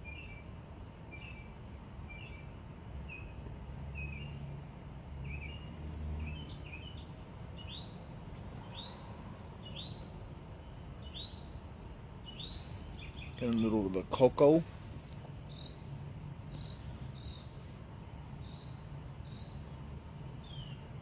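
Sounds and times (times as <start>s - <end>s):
bird chirping: 0.0s - 4.5s, 5.2s - 17.7s, 18.3s - 21.0s.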